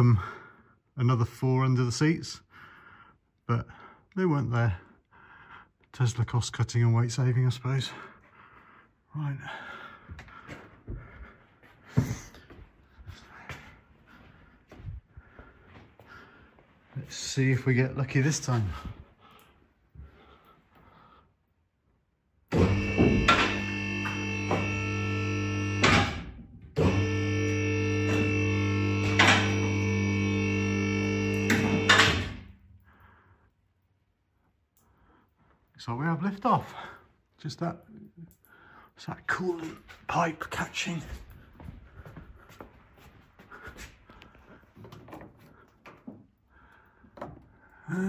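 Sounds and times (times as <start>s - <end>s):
electric pump motor droning: 22.5s - 32.5s
clunks: 22.5s - 32.6s
light knocks and clicks of parts: 44.2s - 47.7s.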